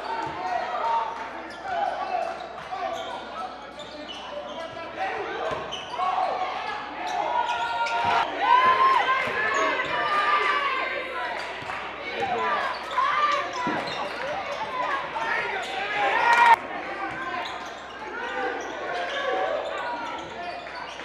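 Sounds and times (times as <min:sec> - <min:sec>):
echoing voices in gym: 0:00.0 - 0:21.0.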